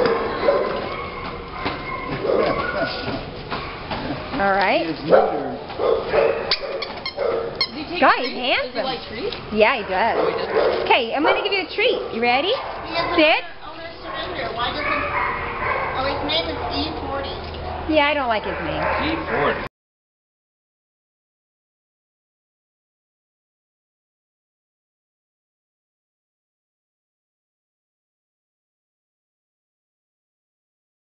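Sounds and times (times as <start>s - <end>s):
dog whining: 0.0s - 4.3s, 5.1s - 8.9s, 18.5s - 19.7s
animal sounds: 0.0s - 9.1s, 9.7s - 19.7s
ball bouncing on concrete: 0.8s - 4.8s.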